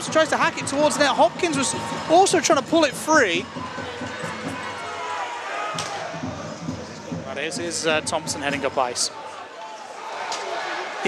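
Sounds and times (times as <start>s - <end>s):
arena crowd murmur: 0.0s - 11.0s.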